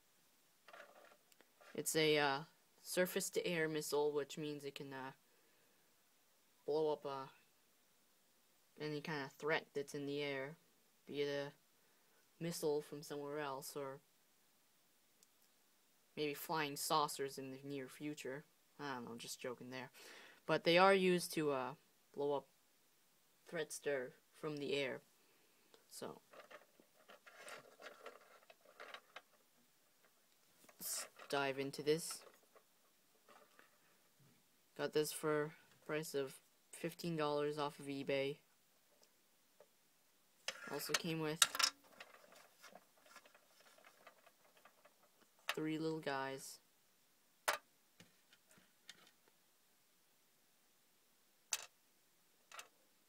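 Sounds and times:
toy truck clicking and scraping: 26.3s - 29.4s, 40.4s - 45.6s.

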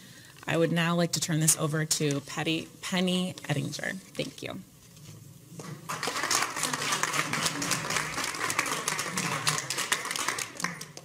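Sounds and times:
people applauding: 5.8s - 11.0s.

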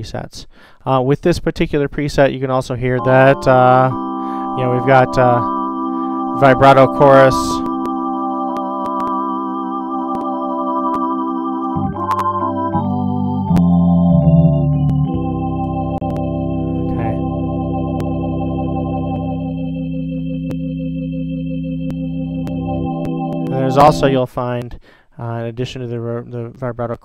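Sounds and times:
organ chords with vibrato: 2.9s - 24.3s.

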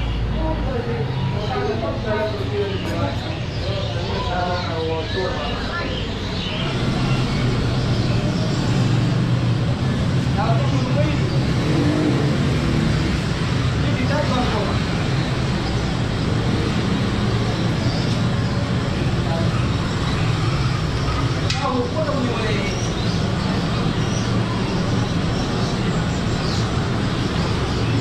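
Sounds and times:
indistinct voices: 0.0s - 28.0s
street hum and rumble: 0.0s - 28.0s.

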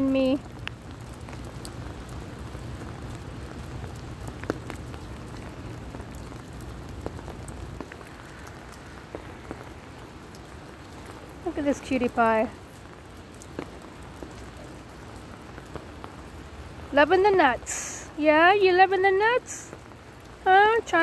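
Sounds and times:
rain on an umbrella: 0.0s - 21.0s
sharp drip ticks: 0.0s - 21.0s.

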